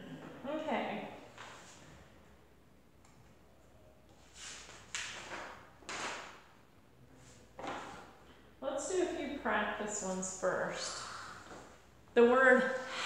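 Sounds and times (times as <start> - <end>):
paper pages rustling: 4.2 - 6.3.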